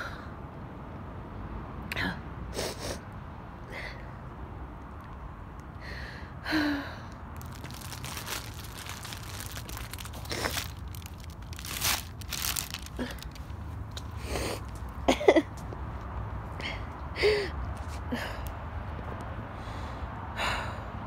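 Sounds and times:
low background rumble: 1.8s - 15.5s
breaths and sniffs: 2.5s - 3.1s, 9.4s - 12.0s, 12.6s - 14.8s.

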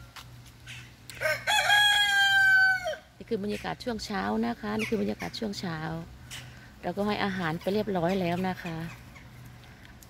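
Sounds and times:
rooster crowing: 1.1s - 3.1s.

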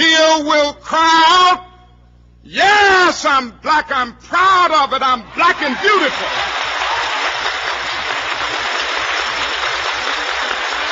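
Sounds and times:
large audience applauding: 5.5s - 10.9s.

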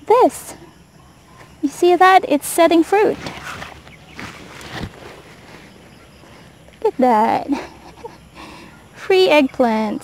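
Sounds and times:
leaves and stems rustling: 1.3s - 8.5s.

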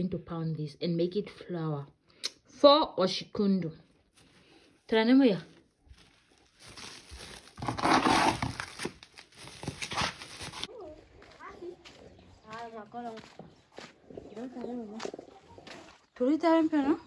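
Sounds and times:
grain and plastic sack rustling: 5.9s - 10.7s.

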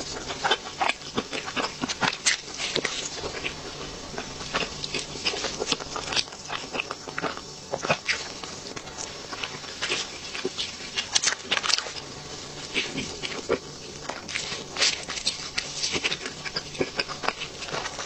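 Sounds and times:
chewing crisp cake: 0.0s - 18.0s.

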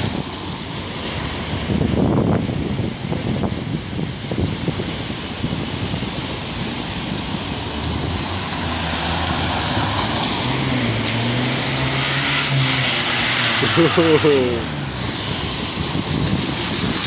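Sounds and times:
tyres hissing on wet road: 0.0s - 17.0s
vehicle engine hum: 0.0s - 17.0s.

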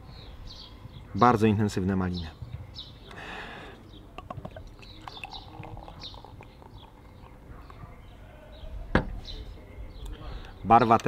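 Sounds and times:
small birds chirping: 0.0s - 11.0s
beer pouring into a glass: 4.2s - 7.4s.

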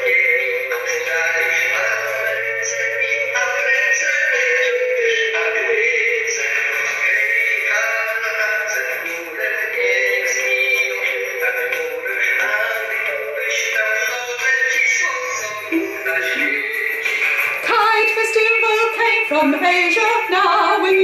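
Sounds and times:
instrumental music with vibrato lead: 0.0s - 21.0s.

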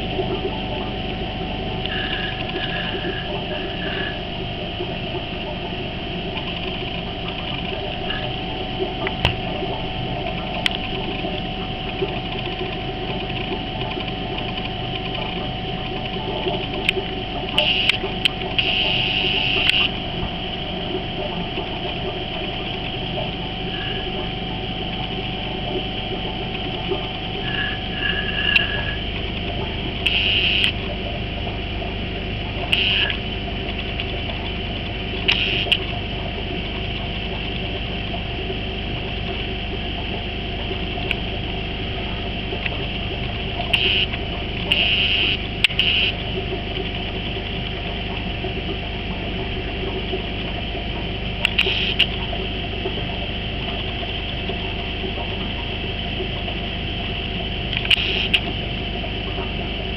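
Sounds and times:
air pump humming: 0.0s - 59.9s.

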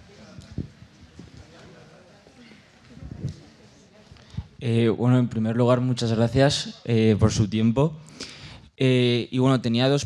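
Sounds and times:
faint murmur: 0.0s - 4.6s.

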